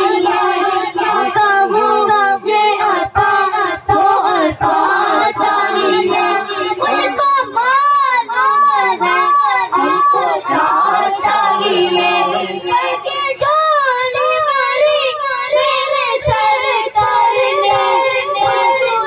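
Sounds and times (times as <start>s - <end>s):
boy singing unaccompanied: 0.0s - 19.0s.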